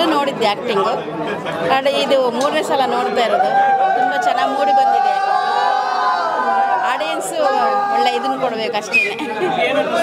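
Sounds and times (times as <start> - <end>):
murmur of voices: 0.0 - 10.0
woman talking: 1.7 - 5.2, 6.8 - 9.0.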